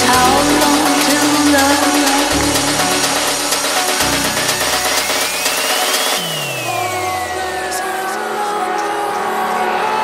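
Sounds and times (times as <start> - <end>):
rising synth sweep: 0.0 - 8.4
deep house music: 0.0 - 10.0
low bass tone sliding down: 2.2 - 7.9.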